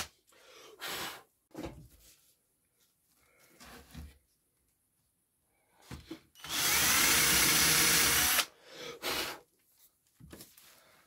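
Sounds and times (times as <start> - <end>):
power drill boring into wood: 6.4 - 8.5.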